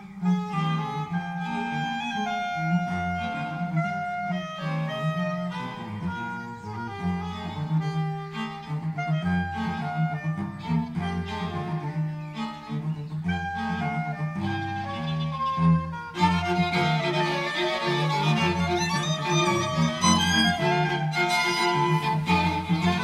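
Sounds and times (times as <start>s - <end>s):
pulsing cello line: 0.0s - 23.0s
soprano saxophone: 0.0s - 23.0s
string quartet: 0.0s - 23.0s.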